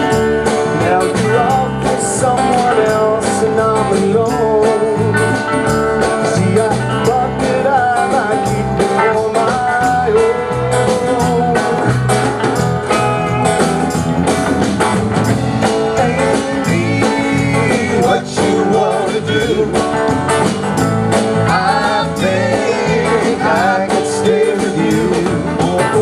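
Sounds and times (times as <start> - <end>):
acoustic and electric guitars: 0.0 - 26.0
bass guitar: 0.0 - 26.0
drum kit steady beat: 0.0 - 26.0.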